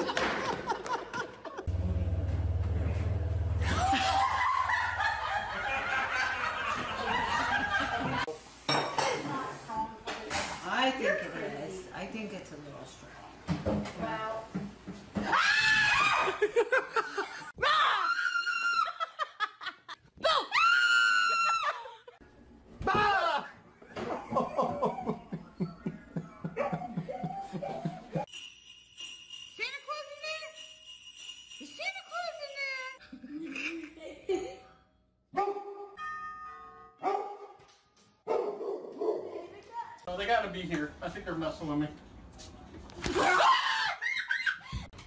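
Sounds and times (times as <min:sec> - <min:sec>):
woman screaming: 0:15.2 - 0:16.4, 0:17.6 - 0:19.1, 0:20.2 - 0:22.0, 0:43.2 - 0:44.5
dog barking: 0:35.4 - 0:36.0, 0:37.0 - 0:37.6, 0:38.2 - 0:39.5
doorbell chimes: 0:36.0 - 0:37.0.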